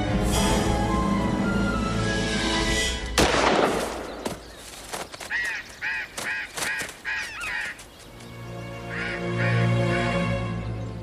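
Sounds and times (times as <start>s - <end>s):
bird harsh calls: 3.9s - 8.2s.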